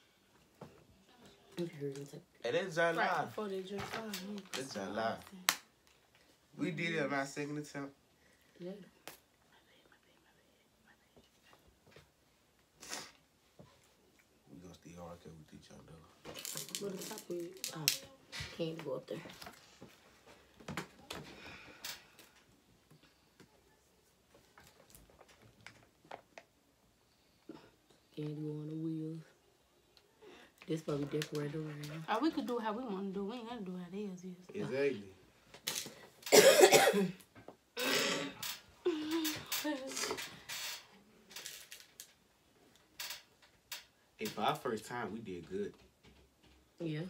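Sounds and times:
plastic bag rustle: 0:16.3 - 0:17.7
person humming and laughing: 0:38.8 - 0:40.2.

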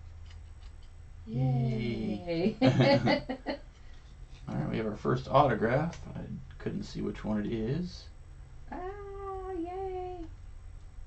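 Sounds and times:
person saying aah: 0:01.3 - 0:02.5.

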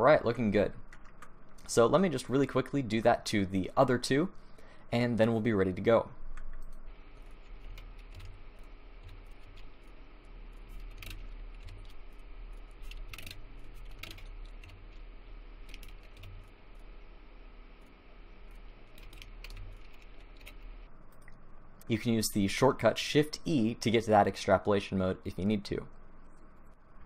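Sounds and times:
low electrical hum: 0:00.0 - 0:27.0
keyboard and mouse clicks: 0:10.7 - 0:14.8, 0:15.6 - 0:16.5, 0:19.0 - 0:21.4.

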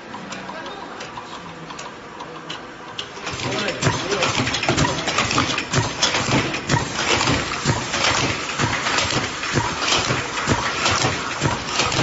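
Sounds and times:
machine fast ticking and clicking: 0:00.0 - 0:12.0
cans clattering on metal conveyor: 0:03.0 - 0:12.0.

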